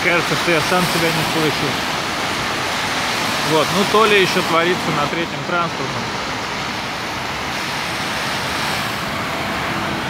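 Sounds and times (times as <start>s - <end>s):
busy street traffic: 0.0s - 10.0s.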